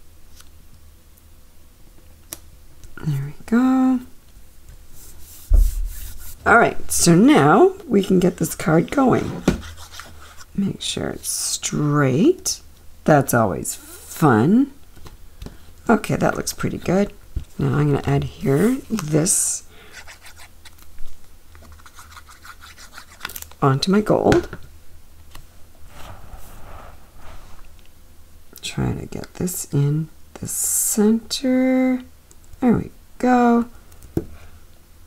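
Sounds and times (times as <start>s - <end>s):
palms rubbing on paper: 4.9s - 6.5s, 9.1s - 10.5s, 19.9s - 20.7s, 21.6s - 23.4s, 25.8s - 27.8s
dull thump: 5.5s - 6.0s.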